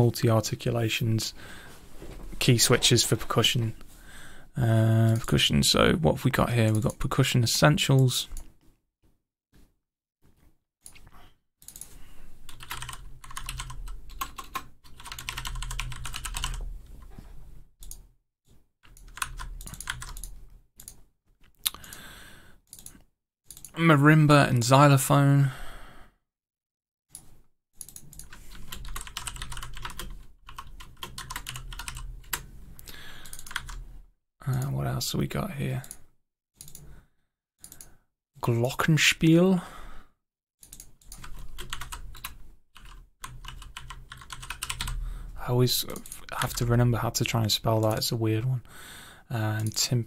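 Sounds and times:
keyboard typing: 12.5s - 16.7s, 18.8s - 21.0s, 27.8s - 32.5s, 33.2s - 33.8s, 40.6s - 45.0s.

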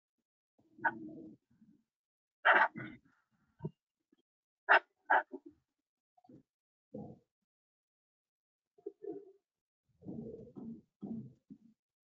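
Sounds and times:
animal calls: 2.4s - 3.0s, 4.7s - 5.4s.

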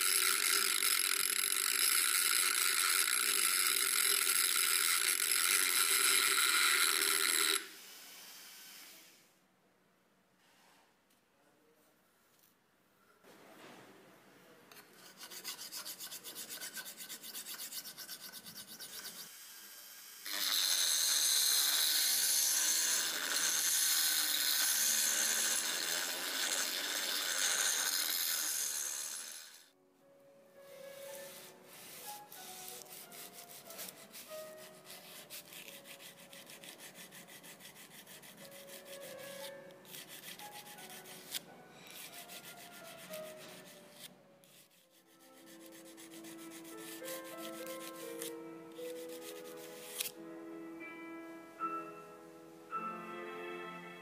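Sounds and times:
file rasping on blade: 0.0s - 7.7s, 14.8s - 29.6s, 32.0s - 50.1s
rotary tool grinding steel: 0.0s - 9.0s, 14.8s - 29.7s
soft piano music: 29.8s - 54.0s.

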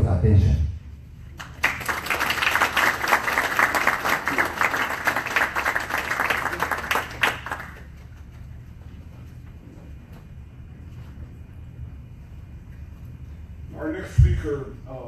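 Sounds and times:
audience applauding: 1.3s - 8.3s.

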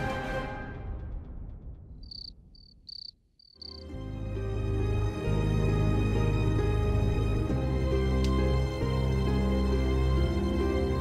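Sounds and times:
low sombre music: 0.0s - 2.5s, 3.7s - 11.0s
background music: 0.0s - 2.7s, 3.6s - 11.0s
cricket chirping: 2.0s - 3.8s.

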